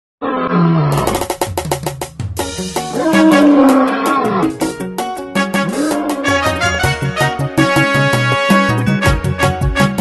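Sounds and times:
lion roaring: 0:00.2 - 0:01.3, 0:02.9 - 0:04.7, 0:05.6 - 0:06.6
music: 0:00.9 - 0:10.0
fast drum strokes: 0:01.0 - 0:03.8.

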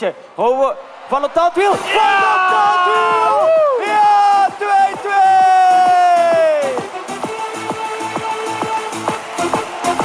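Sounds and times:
crowd cheering: 0:00.0 - 0:10.0
commentator shouting: 0:00.4 - 0:07.0.

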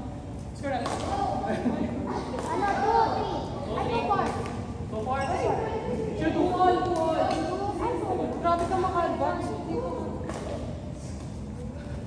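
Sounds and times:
children's chatter in echoing hall: 0:00.1 - 0:12.0.

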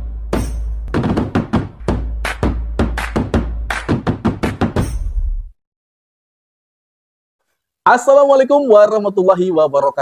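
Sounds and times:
rapid percussive music hits: 0:00.0 - 0:05.6.

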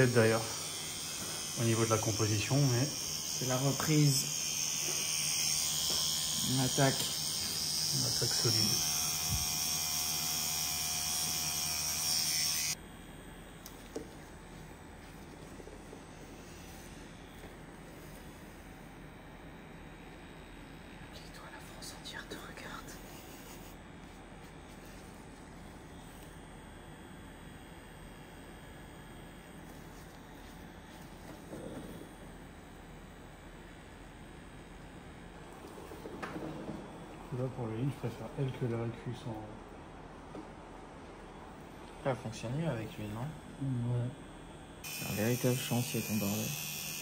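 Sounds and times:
tattoo machine buzzing: 0:00.0 - 0:14.7, 0:16.0 - 0:20.9, 0:22.1 - 0:24.8, 0:25.6 - 0:33.5, 0:44.2 - 0:47.0.

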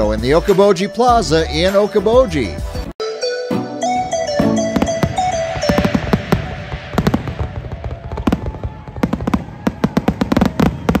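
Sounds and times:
fireworks bangs and crackles: 0:04.4 - 0:11.0.

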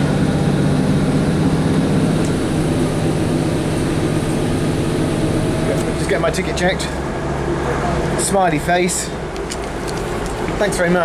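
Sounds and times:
train engine drone: 0:00.0 - 0:11.0.

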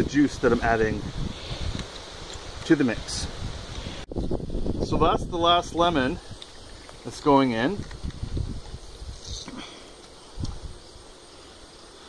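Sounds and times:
wind rumble on microphone: 0:00.0 - 0:09.7, 0:10.3 - 0:11.0.

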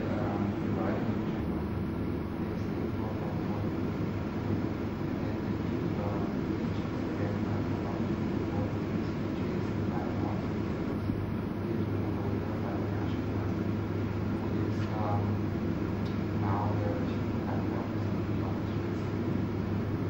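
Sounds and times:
faint murmured voices: 0:00.0 - 0:20.0.

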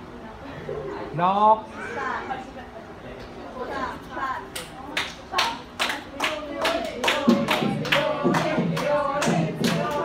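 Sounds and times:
audience clapping in rhythm: 0:04.6 - 0:10.0
voices chanting: 0:05.9 - 0:10.0.

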